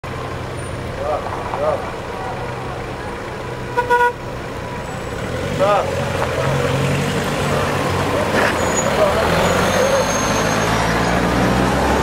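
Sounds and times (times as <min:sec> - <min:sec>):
car horn toot: 0:03.7 - 0:04.3.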